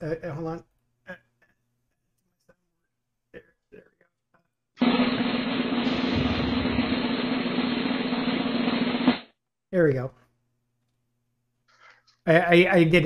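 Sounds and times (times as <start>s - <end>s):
snare drum roll: 4.8s - 9.3s.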